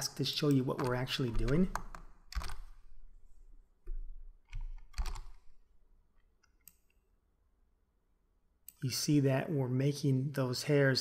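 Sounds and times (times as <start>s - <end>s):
computer mouse clicks: 0.5s - 2.7s, 3.9s - 5.5s
keyboard presses: 0.5s - 2.7s, 3.8s - 5.6s.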